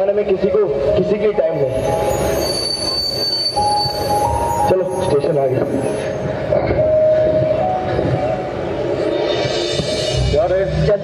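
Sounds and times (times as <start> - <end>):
steady rumbling noise: 0.0 - 11.0
horn-like tone: 1.6 - 6.3.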